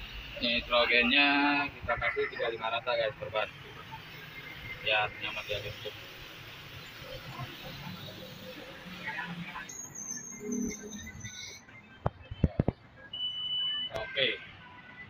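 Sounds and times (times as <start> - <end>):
high-pitched beep: 9.0 - 12.4, 13.1 - 13.9.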